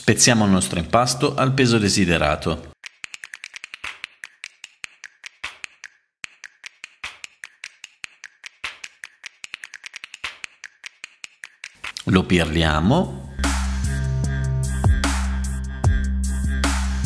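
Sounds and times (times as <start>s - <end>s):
music of sharp dry clicks: 2.8s - 12.1s.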